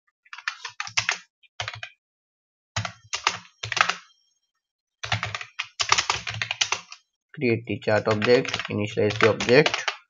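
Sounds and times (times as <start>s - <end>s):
typing on computer keyboard: 0.4s - 2.0s, 2.8s - 4.1s, 5.0s - 7.0s, 8.0s - 10.0s.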